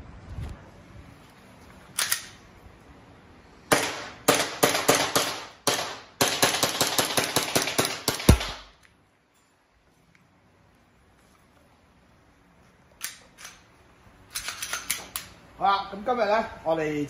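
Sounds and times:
airsoft pistol shots: 3.7s - 8.8s.

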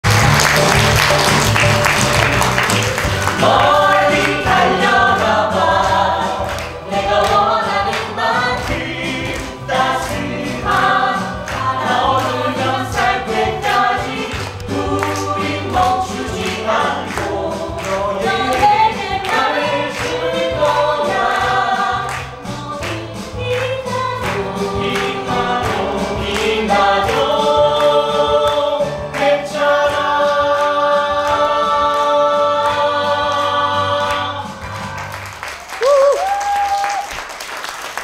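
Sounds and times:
cast singing together: 3.0s - 35.0s
woman singing lead: 11.6s - 25.6s.

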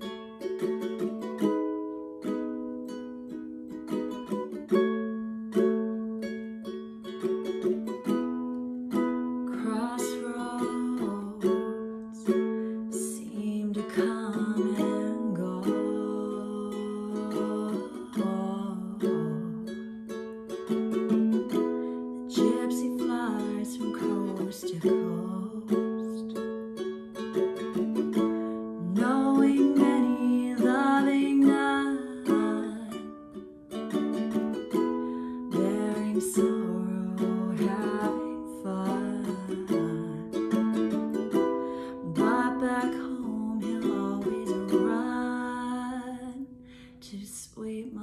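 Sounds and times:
ukulele playing: 0.0s - 48.0s.

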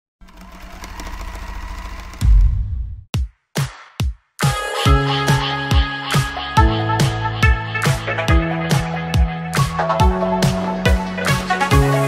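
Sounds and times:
buzzing machine-like rattle: 0.2s - 2.6s.

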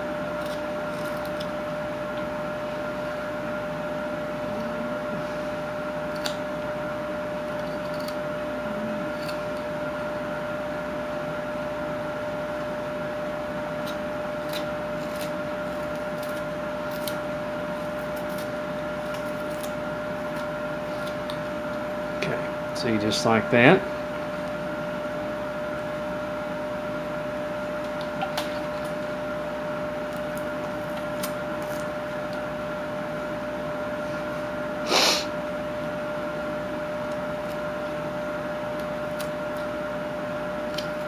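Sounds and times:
steady hum with whine: 0.0s - 41.0s.

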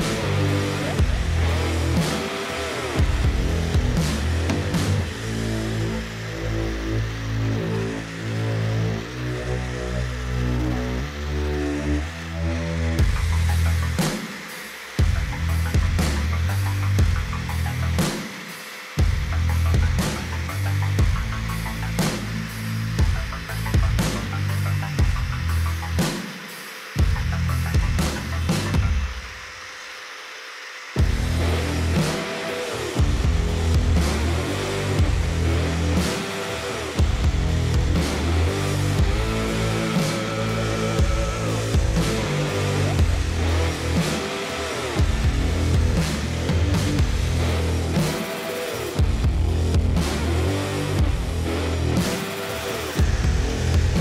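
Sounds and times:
electronic music with heavy bass: 0.0s - 30.3s, 31.0s - 54.0s.

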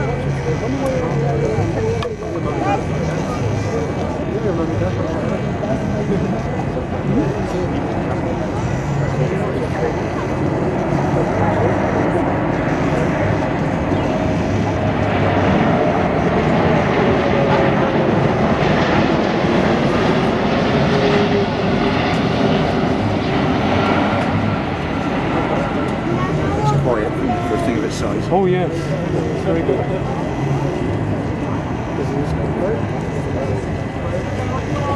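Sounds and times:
jet aircraft flying overhead: 0.0s - 34.9s.

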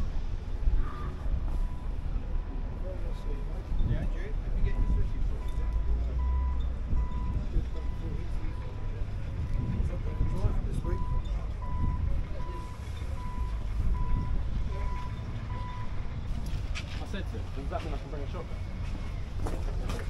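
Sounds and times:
reversing alarm beeping: 1.5s - 3.9s, 4.6s - 16.0s.

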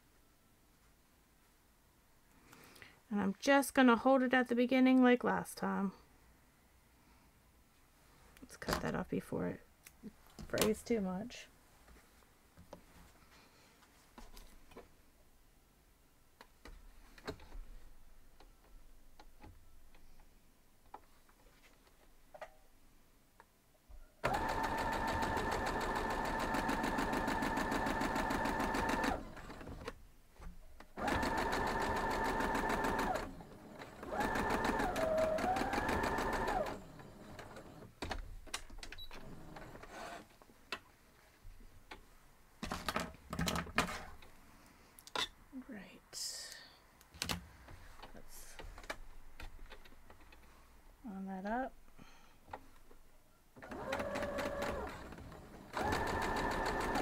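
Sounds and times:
sewing machine stitching: 24.2s - 30.0s, 31.0s - 37.9s, 53.6s - 57.0s.

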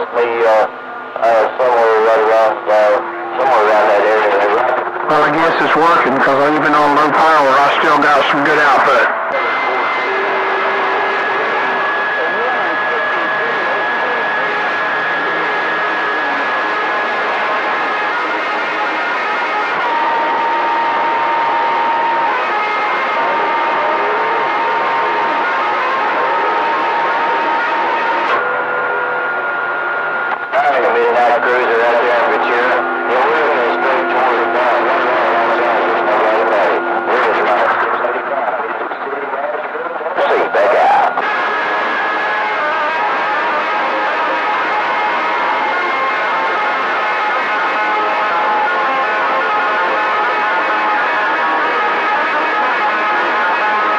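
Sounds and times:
garbled radio voices: 0.0s - 53.9s
radio crackling: 0.0s - 53.9s
radio static hiss: 0.0s - 53.9s.

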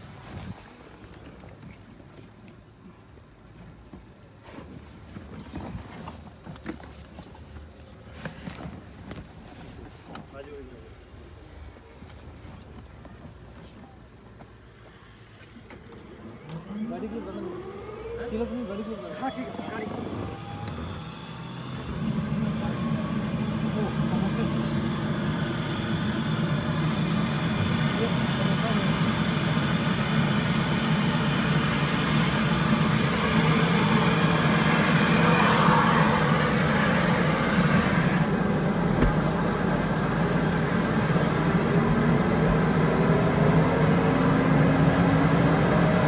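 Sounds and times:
engine whine rising in pitch: 15.7s - 46.0s
helicopter turbine and rotor running: 16.0s - 46.0s.

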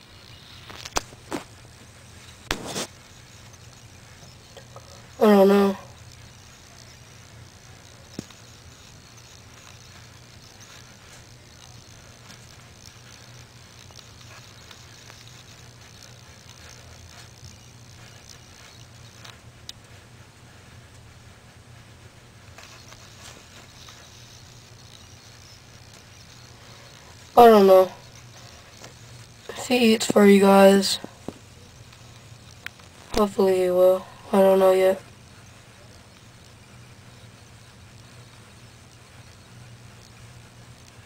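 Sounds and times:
low hum: 0.0s - 41.0s
claws scratching on sand: 2.5s - 3.8s, 22.5s - 27.3s.

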